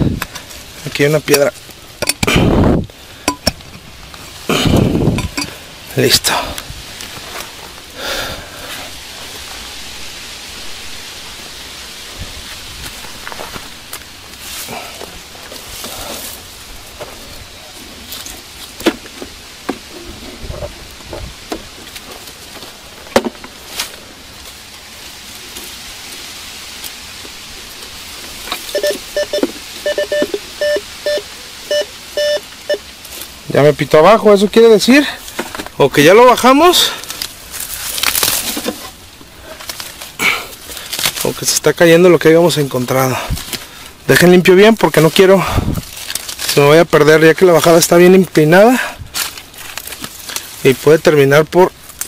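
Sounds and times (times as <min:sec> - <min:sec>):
steady hiss: 0:00.0 - 0:52.0
metal detector beeping: 0:28.7 - 0:32.9
knocks and scrapes: 0:37.8 - 0:39.0.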